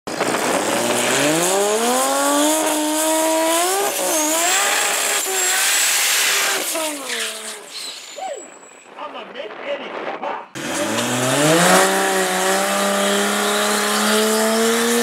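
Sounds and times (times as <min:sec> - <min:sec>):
racing car engine revving: 0:00.1 - 0:07.4, 0:10.6 - 0:15.0
tyres spinning with squeal: 0:04.0 - 0:08.9.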